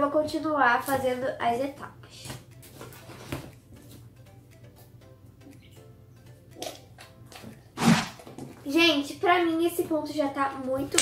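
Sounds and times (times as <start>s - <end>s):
slime squelching: 7.4s - 8.3s
wet splat: 7.8s - 8.3s.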